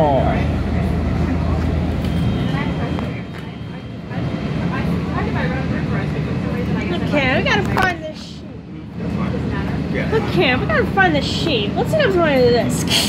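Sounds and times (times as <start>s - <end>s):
train rumbling in a tunnel: 0.0s - 13.0s.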